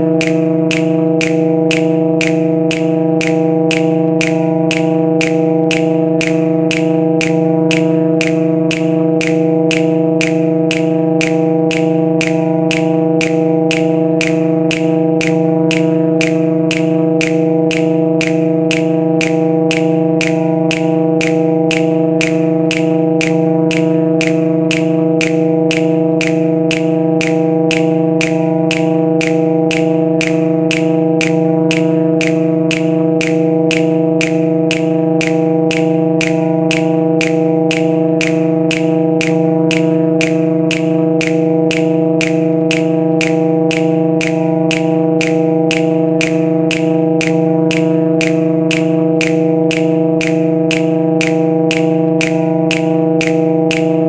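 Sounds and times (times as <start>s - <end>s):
low trombone drone: 0.0s - 54.0s
dry snap clicks: 0.2s - 54.0s.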